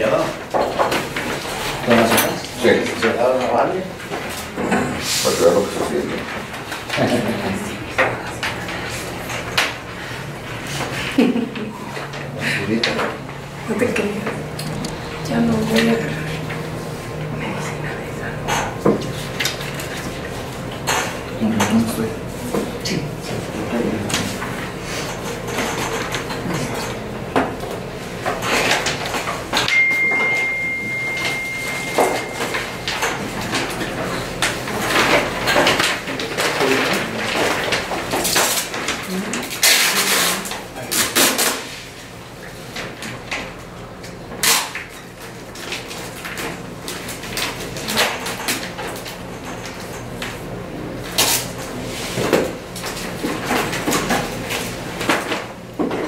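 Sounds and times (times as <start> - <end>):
papers rustling and shuffling: 21.5 - 56.0
steady high beep: 29.7 - 32.8.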